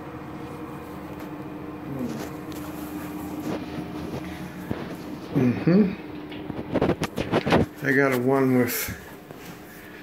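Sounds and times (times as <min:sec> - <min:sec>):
room ventilation hum: 0:00.0 - 0:10.0.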